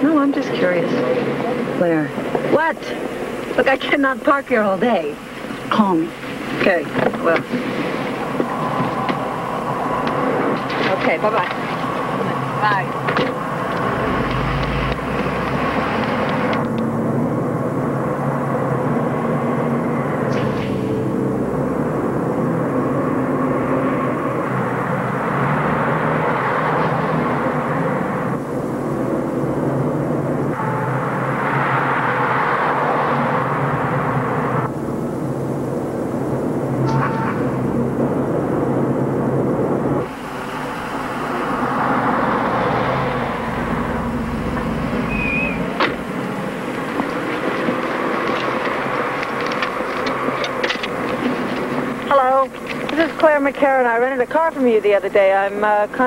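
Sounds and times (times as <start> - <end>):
cars and trucks passing: 0.0 - 56.0
car horn: 30.5 - 31.2, 36.8 - 37.7, 44.6 - 46.2.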